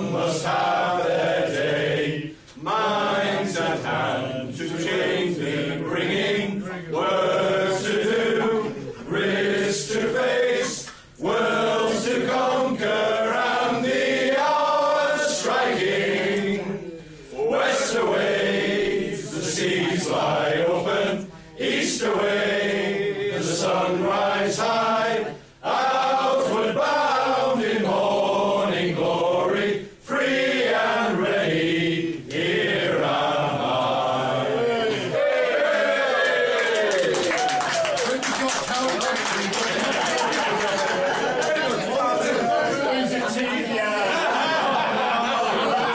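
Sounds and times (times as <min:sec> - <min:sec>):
men singing unaccompanied: 0:00.0 - 0:35.4.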